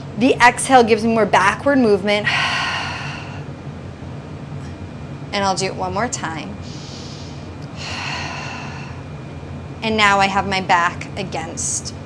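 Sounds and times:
woman breathing out: 2.3 - 3.5, 6.6 - 9.1.

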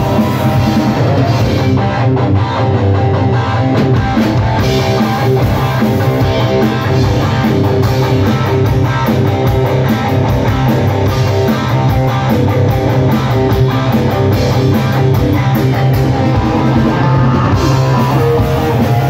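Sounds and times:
heavy metal band playing: 0.0 - 19.0.

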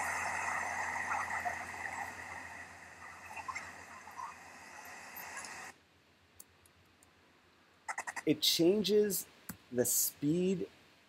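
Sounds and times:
chorus of calling animals: 0.0 - 5.7, 7.9 - 8.3.

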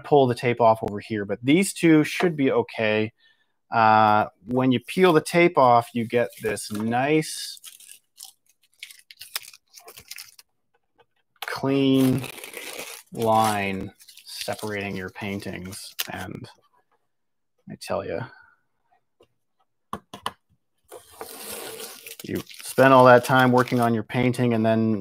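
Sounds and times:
tape being peeled off paper: 7.6 - 10.5, 11.9 - 16.1, 20.9 - 23.9
tape peeling off paper: 11.9 - 14.8.

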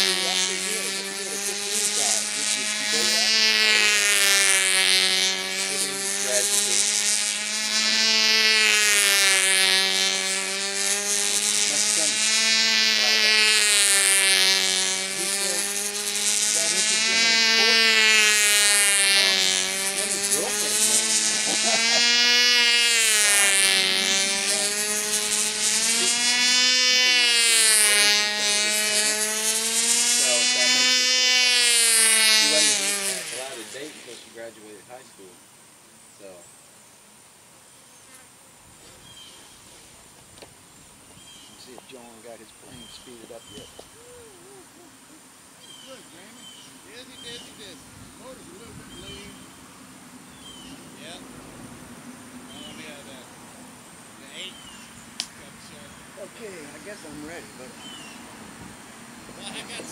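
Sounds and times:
model plane engine buzzing: 0.0 - 59.9.

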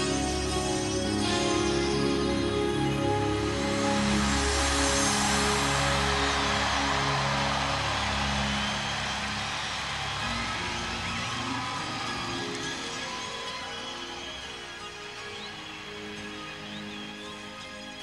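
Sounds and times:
crowd cheering: 3.0 - 18.0
whistles from crowd: 4.0 - 18.0.

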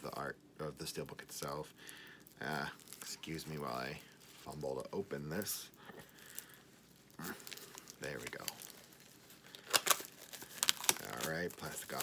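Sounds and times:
plastic wrap crinkling: 0.0 - 12.0.

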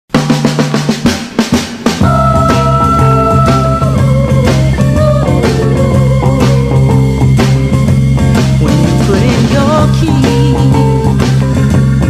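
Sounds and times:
quick drum hits: 0.1 - 12.0.

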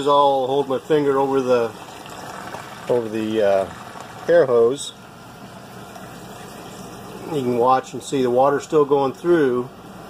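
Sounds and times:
water pump running: 0.0 - 10.0.

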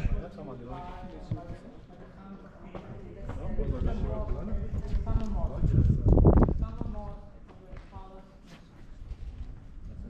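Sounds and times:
people talking: 0.0 - 8.6.

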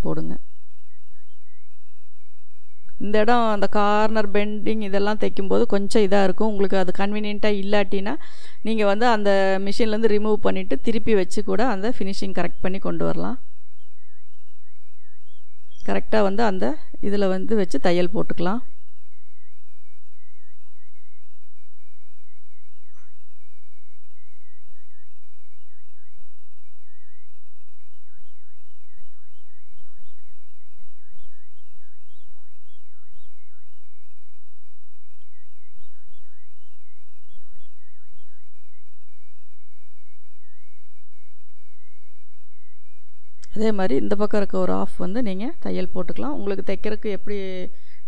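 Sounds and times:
high-pitched wavering tone: 0.0 - 8.2, 8.8 - 48.0.

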